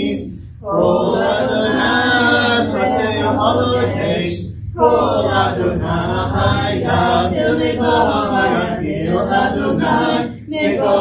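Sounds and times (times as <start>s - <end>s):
congregation chanting unaccompanied: 0.0s - 11.0s.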